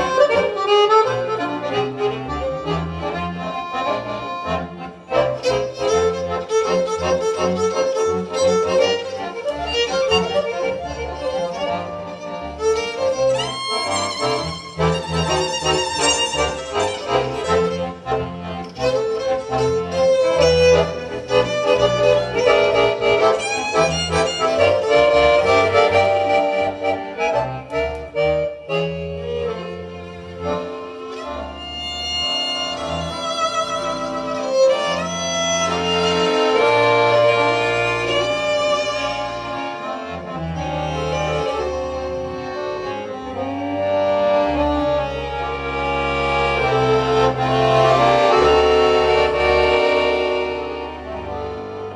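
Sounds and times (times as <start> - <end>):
accordion: 0.0 - 51.9
violin: 0.0 - 51.9.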